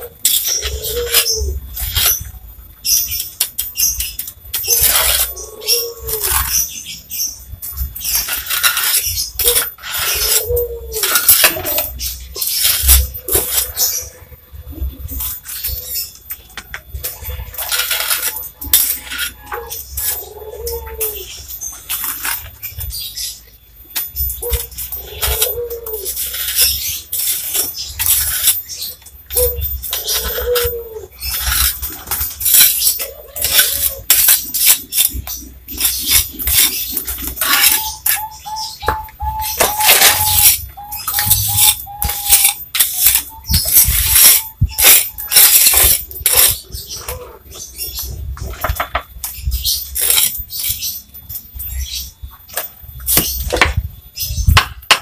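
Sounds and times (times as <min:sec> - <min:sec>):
trowel scraping wet mortar: 0:08.0 - 0:14.1, 0:17.0 - 0:23.3, 0:24.5 - 0:38.8, 0:39.4 - 0:47.9.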